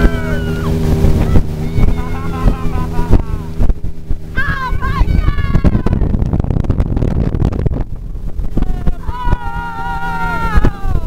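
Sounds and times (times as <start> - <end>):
motorboat engine running: 0.0 - 11.0
wind buffeting microphone: 0.0 - 11.0.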